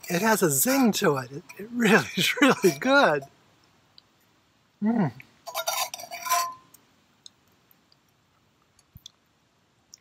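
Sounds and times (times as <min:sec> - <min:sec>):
faint ticks: 0:06.7 - 0:09.2.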